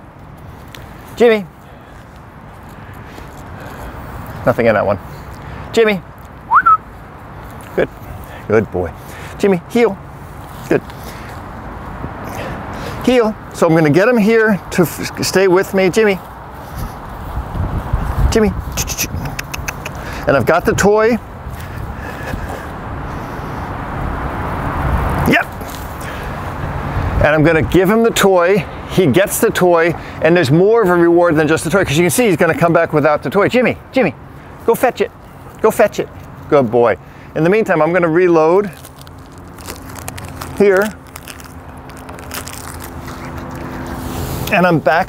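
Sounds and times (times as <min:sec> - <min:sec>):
rising vocal call: 0:06.5 - 0:06.8.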